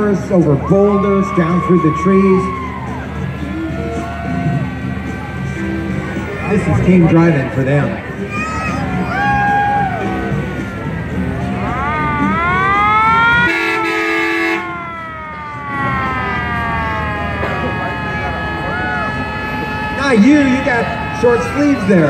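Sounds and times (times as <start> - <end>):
vehicle siren wailing: 0.0 - 7.3, 11.1 - 22.0
horn blast: 11.6 - 22.0.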